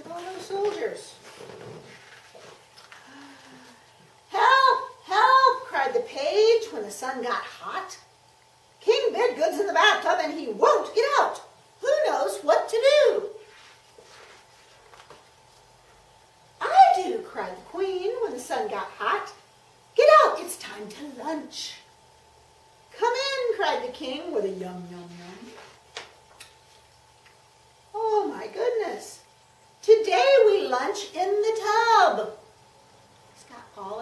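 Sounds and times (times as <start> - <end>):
low hiss: 0.0 - 34.0
thin steady hum: 0.0 - 34.0.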